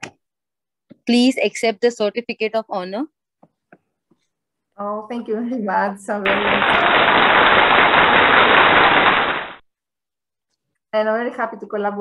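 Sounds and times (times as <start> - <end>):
crackly noise rush: 6.3 - 9.6.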